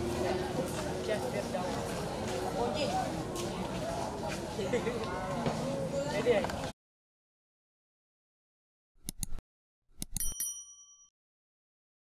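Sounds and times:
small bell ding: 10.2s - 11.1s.

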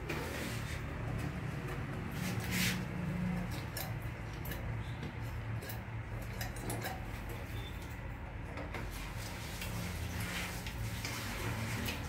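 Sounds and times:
small clicks of pipe fitting: 3.5s - 8.9s.

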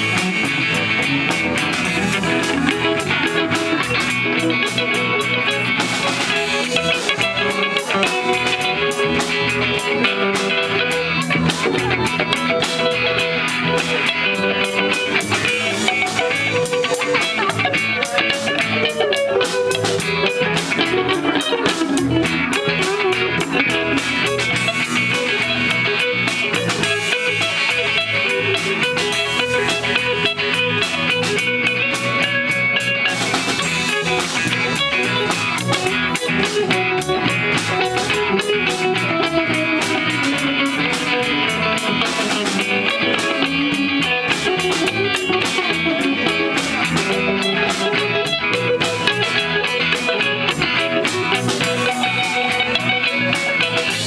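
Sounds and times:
drum kit with cymbals: 0.0s - 54.0s
electric bass: 0.0s - 54.0s
electric guitars: 0.0s - 54.0s.

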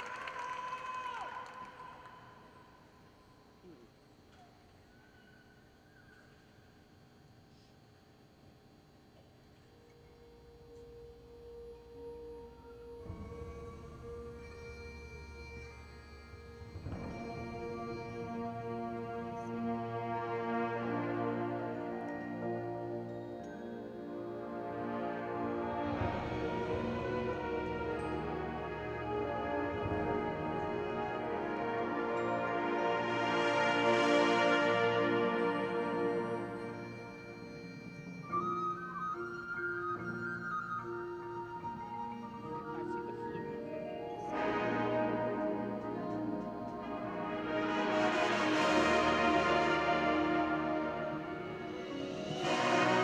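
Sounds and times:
marching band holding a chord: 10.7s - 38.1s, 43.7s - 53.0s.

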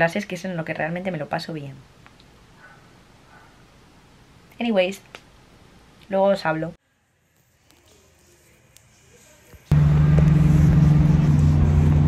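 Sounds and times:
traffic noise: 9.7s - 12.0s
vehicle engine running: 9.7s - 12.0s.

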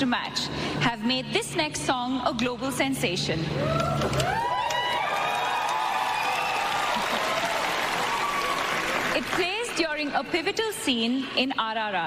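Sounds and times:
voices cheering: 3.6s - 9.3s
audience applauding: 4.2s - 10.0s.

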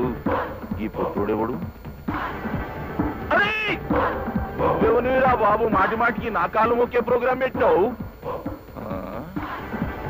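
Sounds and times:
film music: 0.0s - 10.0s.

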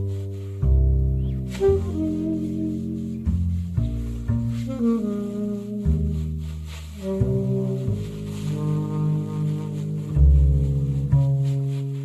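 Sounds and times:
saxophone: 0.0s - 12.0s
upright bass: 0.0s - 12.0s.

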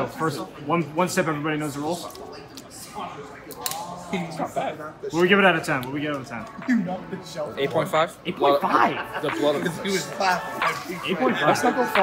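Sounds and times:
faint voices chattering: 0.0s - 12.0s.

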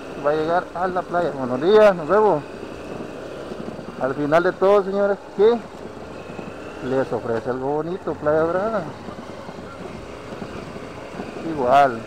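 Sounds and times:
motorcycle engine running: 0.0s - 12.0s
wind buffeting microphone: 1.6s - 12.0s.

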